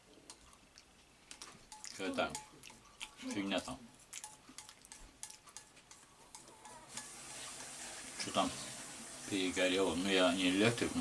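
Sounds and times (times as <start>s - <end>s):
steady hiss: 6.9s - 11.0s.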